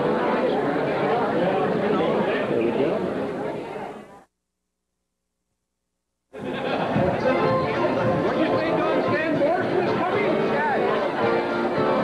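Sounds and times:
chatter of many people: 0.0s - 4.3s, 6.4s - 12.0s.

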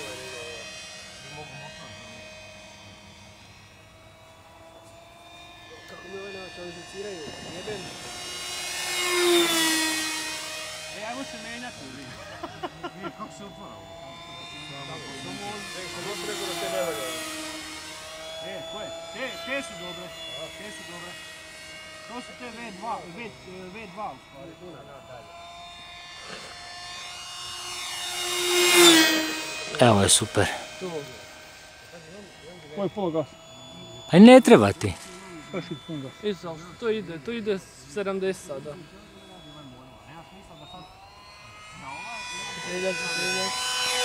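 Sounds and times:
model plane motor whine: 0.0s - 44.0s.

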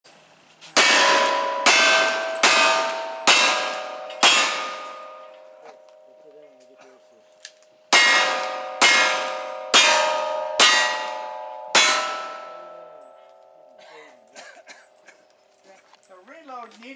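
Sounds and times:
steel target ringing: 0.8s - 7.3s, 7.9s - 15.0s.

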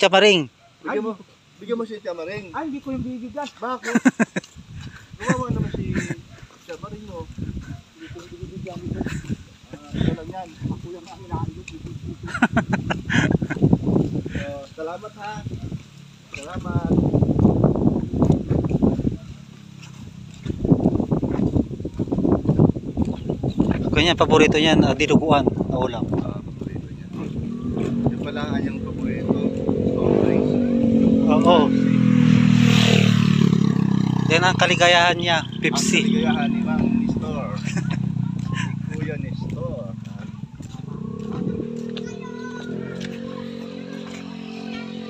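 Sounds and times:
small motorcycle engine passing: 15.2s - 22.8s, 25.5s - 45.0s
ducks quacking: 35.2s - 37.0s.

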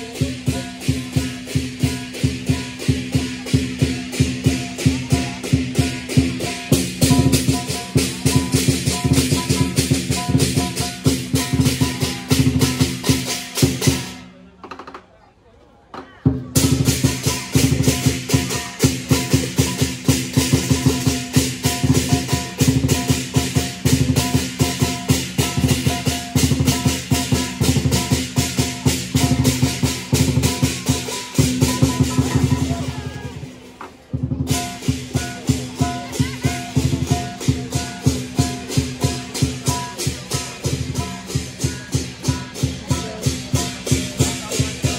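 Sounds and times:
big drum beating fast: 0.0s - 14.2s, 16.2s - 44.9s
gong: 0.0s - 14.2s, 16.7s - 32.9s
cymbals clashing: 0.0s - 14.3s, 16.5s - 44.9s.

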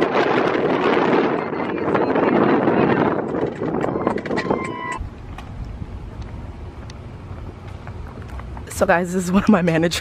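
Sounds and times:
wind on microphone: 0.0s - 8.7s
car engine low rumble: 0.3s - 10.0s.

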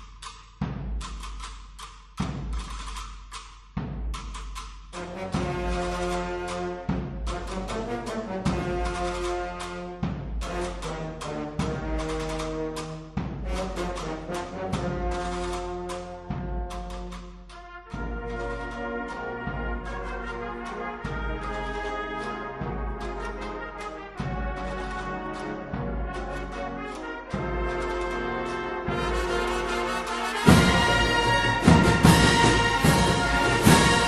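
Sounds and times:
drum strokes: 0.0s - 22.0s, 28.9s - 34.0s
brass chords: 5.0s - 34.0s
sharp drum strokes: 30.4s - 34.0s.

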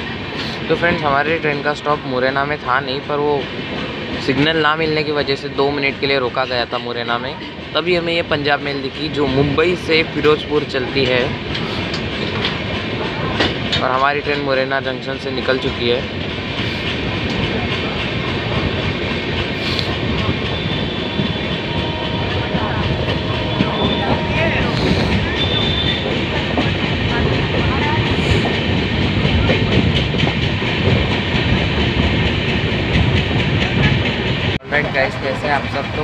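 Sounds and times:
train wheels on rails: 0.0s - 36.0s.

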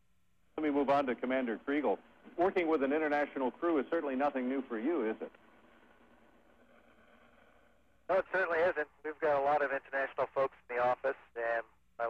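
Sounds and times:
faint radio link hiss: 0.0s - 12.0s.

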